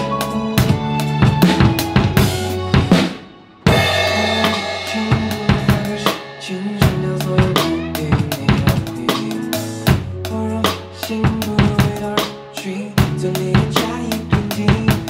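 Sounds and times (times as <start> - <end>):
backing music: 0.0 - 15.0
drum kit groove: 0.0 - 15.0
crash-cymbal wash: 3.7 - 7.7.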